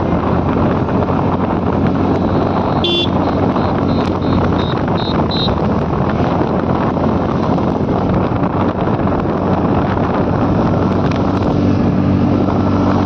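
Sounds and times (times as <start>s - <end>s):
scooter engine humming: 0.0s - 13.0s
wind buffeting microphone: 0.0s - 13.0s
horn toot: 2.1s - 5.6s
short high beeps: 2.2s - 5.6s.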